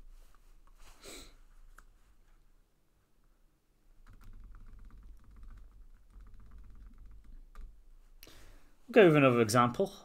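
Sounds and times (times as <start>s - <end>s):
computer keyboard or mouse clicking: 4.0s - 7.8s.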